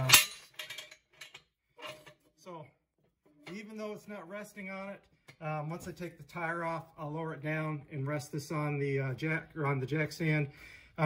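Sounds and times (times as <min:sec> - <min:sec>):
metal jack stand clank: 0:00.0 - 0:02.2.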